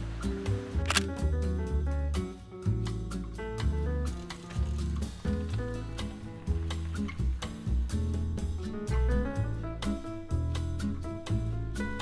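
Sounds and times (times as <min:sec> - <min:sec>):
background music: 0:00.0 - 0:12.0
camera shutter click: 0:00.8 - 0:01.2.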